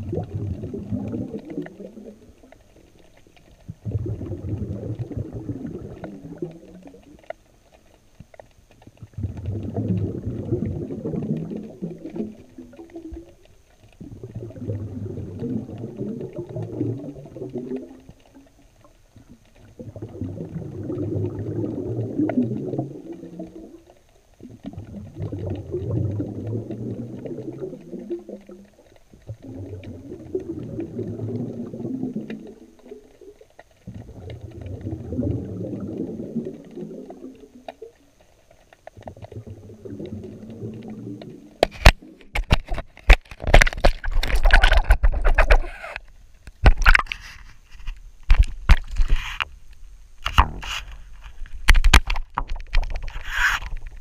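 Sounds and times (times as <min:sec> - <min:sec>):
underwater rumbling water surges: 0:00.0 - 0:07.3, 0:09.0 - 0:18.3, 0:19.2 - 0:23.8, 0:24.4 - 0:38.1, 0:39.0 - 0:42.4.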